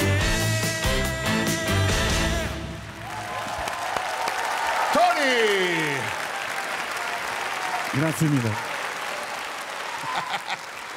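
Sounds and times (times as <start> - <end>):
song: 0.0 - 3.0
audience applauding: 2.9 - 10.9.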